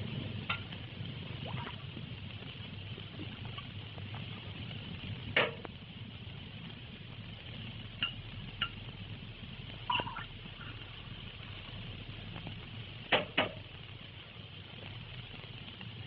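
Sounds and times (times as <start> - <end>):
film soundtrack hiss and hum: 0.0 - 16.0.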